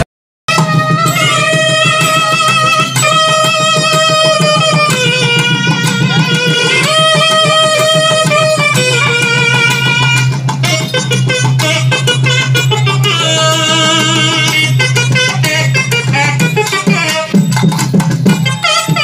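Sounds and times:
double-reed pipes melody: 0:00.0 - 0:19.0
drum beats: 0:00.0 - 0:19.0.

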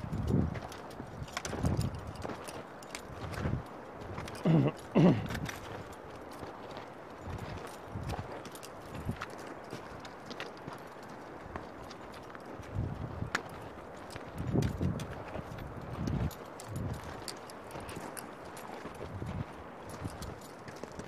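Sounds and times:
trekking pole tips clicking on rock: 0:00.0 - 0:21.0
boots stepping on rocky ground: 0:00.1 - 0:21.0.

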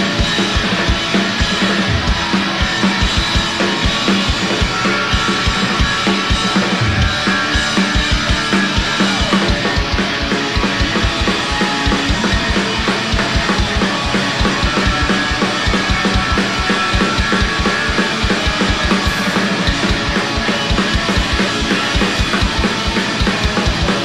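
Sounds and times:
bass guitar: 0:00.0 - 0:24.0
drum kit: 0:00.0 - 0:24.0
electric guitar: 0:00.0 - 0:24.0
fast kick drum beat: 0:00.0 - 0:24.0.

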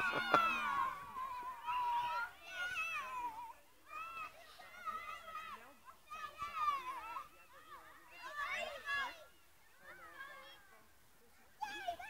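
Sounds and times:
children shouting and squealing: 0:00.0 - 0:12.0.

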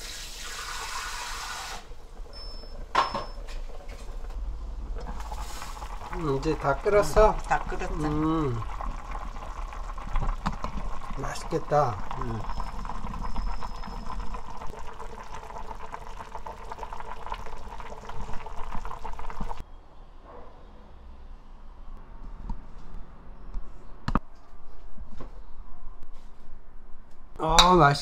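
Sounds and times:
stew bubbling at a boil: 0:00.0 - 0:19.6.

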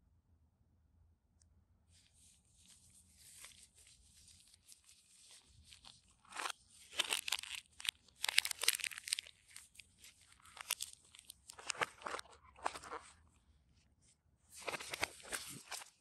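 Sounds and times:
cable and paper crinkling: 0:02.6 - 0:13.4, 0:14.5 - 0:16.0.

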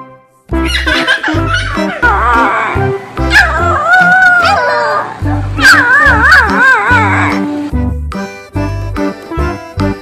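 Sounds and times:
puppy whimpering: 0:00.6 - 0:07.4.

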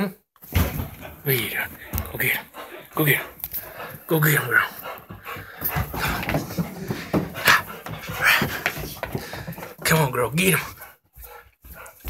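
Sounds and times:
dogs playing: 0:00.4 - 0:12.0.

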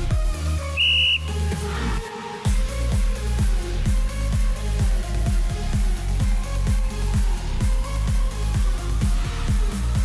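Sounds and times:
electronic dance music: 0:00.0 - 0:10.0
high-pitched whistle blast: 0:00.7 - 0:01.4.

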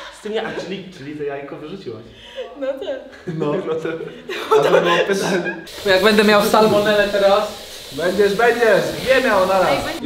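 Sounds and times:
people chuckling: 0:02.4 - 0:05.7
people talking: 0:02.6 - 0:10.0.

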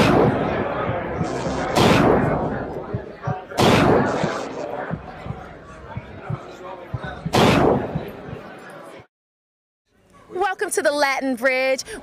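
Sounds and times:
cinematic boom hit: 0:00.0 - 0:02.8
short low thumps: 0:00.0 - 0:08.5.

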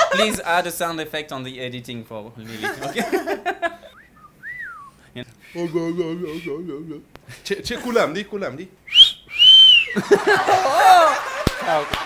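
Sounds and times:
laughter: 0:00.0 - 0:00.4, 0:02.5 - 0:04.0, 0:09.9 - 0:12.0
short rising whistle: 0:04.0 - 0:05.0, 0:08.9 - 0:10.0.

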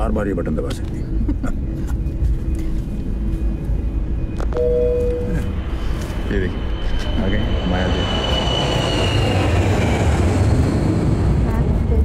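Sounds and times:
high engine whine: 0:00.0 - 0:12.0
jet engines roaring: 0:00.0 - 0:12.0.

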